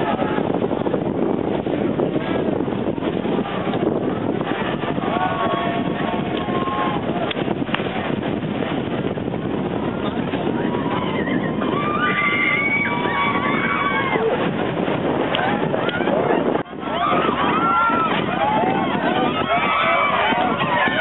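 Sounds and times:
crowd voices talking and calling: 0.0s - 21.0s
steady rushing background: 0.0s - 21.0s
raised voices: 3.3s - 8.1s, 9.8s - 21.0s.

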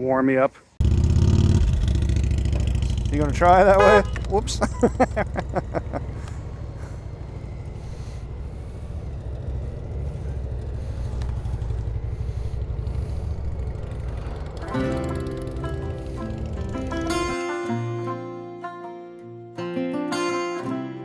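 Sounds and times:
motorcycle engine rumbling: 0.8s - 17.6s
person laughing: 4.3s - 7.0s
music: 14.6s - 21.0s.

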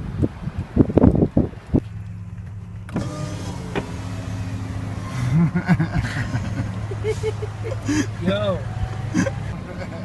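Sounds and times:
outside noise: 0.0s - 10.0s
power window motor humming: 2.7s - 5.4s.

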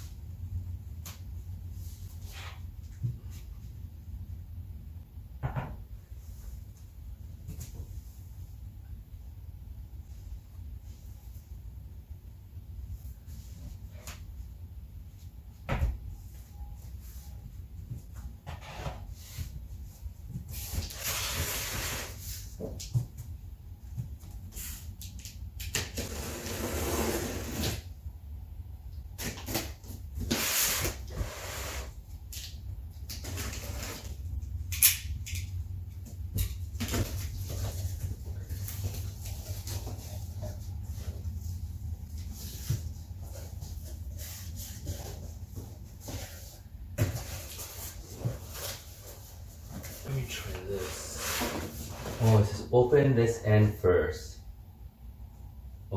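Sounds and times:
low steady hum: 0.0s - 26.6s, 27.2s - 55.9s
cardboard scraping and rustling: 42.2s - 52.5s.

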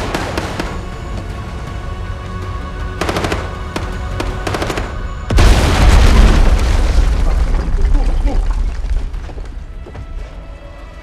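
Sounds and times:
rapid automatic gunfire: 3.0s - 5.0s.

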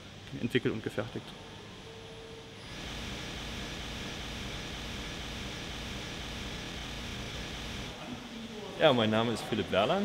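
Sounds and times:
machinery low hum: 0.0s - 8.4s
machinery hiss: 2.6s - 8.0s.

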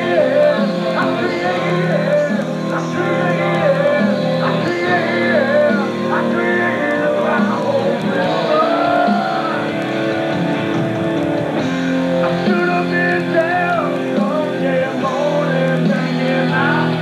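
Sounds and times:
man singing into a microphone: 0.0s - 10.1s, 12.2s - 17.0s
rock backing track with electric guitar: 0.0s - 17.0s.

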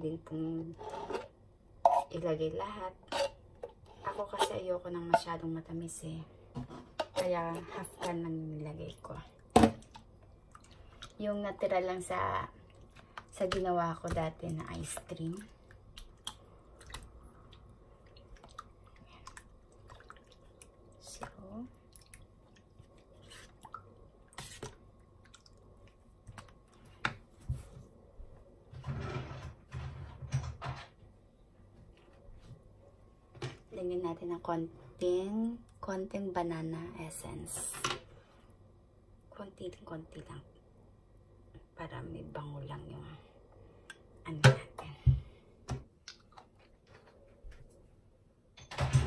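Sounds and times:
wet squelches of stirring: 0.5s - 5.8s, 6.4s - 28.5s, 45.3s - 47.9s
metal spoon scraping plastic bowl: 0.7s - 2.2s.

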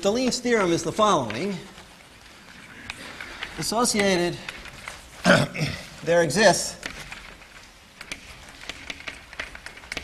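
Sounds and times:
chalk tapping and scratching on blackboard: 6.8s - 10.0s.

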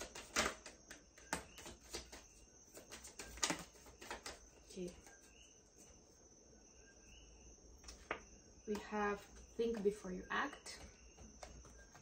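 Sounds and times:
cards tapping: 0.0s - 5.3s, 10.7s - 12.0s.

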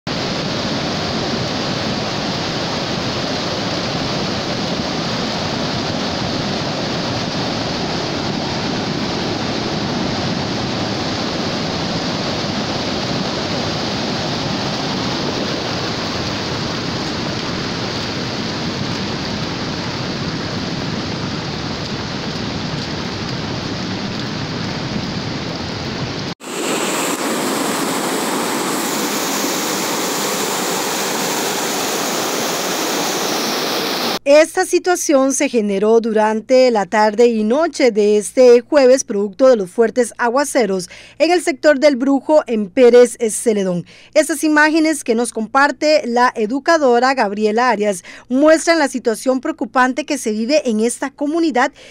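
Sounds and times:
floodwater rushing: 0.1s - 34.2s.

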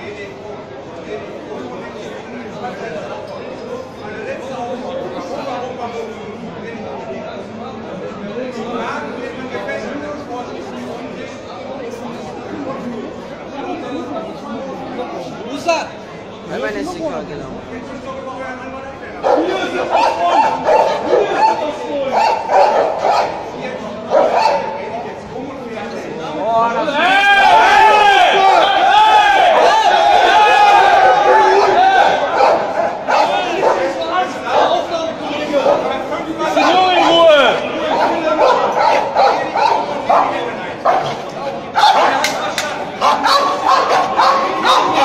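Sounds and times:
dogs barking: 19.2s - 24.8s, 30.7s - 34.8s, 35.6s - 36.0s, 36.6s - 41.2s, 41.8s - 42.3s, 43.0s - 45.0s
crowd of men shouting: 26.8s - 40.4s.

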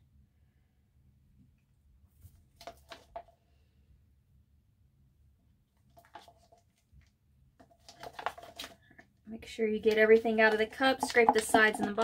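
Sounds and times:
plastic cups clicking and tapping: 7.6s - 9.0s, 9.7s - 12.0s.

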